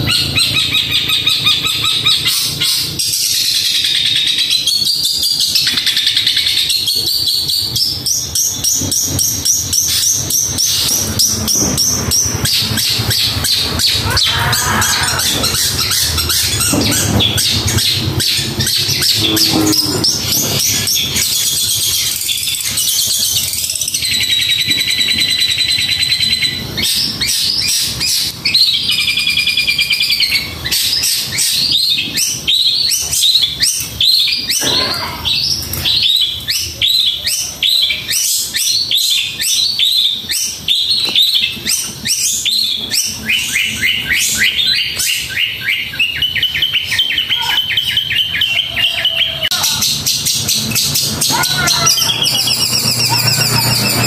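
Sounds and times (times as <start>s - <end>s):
buzzy bird trills: 0.0s - 36.7s, 41.7s - 54.0s
bird singing rapid high notes: 0.0s - 54.0s.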